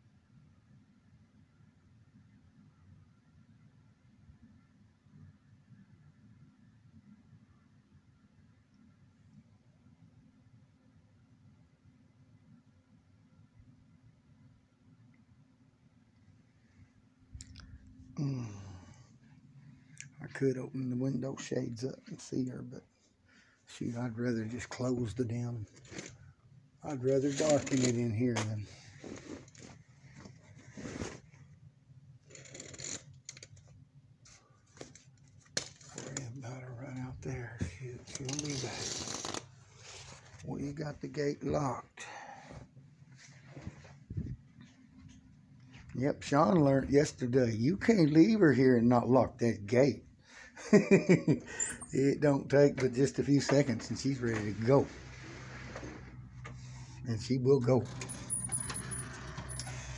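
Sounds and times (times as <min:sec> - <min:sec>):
steady low hum: 0:15.7 - 0:32.3, 0:33.5 - 0:59.9
person murmuring: 0:18.2 - 0:18.8.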